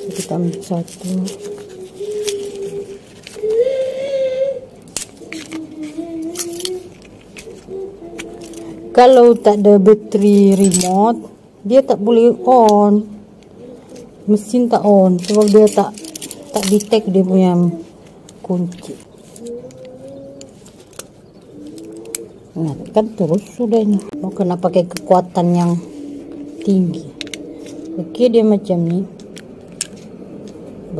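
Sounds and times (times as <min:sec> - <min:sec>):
dove cooing: 0:00.0 - 0:18.0, 0:18.8 - 0:30.9
low steady hum: 0:00.0 - 0:30.9.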